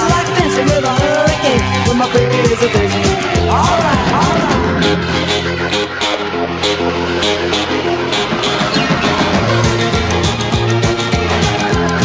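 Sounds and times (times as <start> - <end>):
instrumental rockabilly music: 0.0 - 12.0.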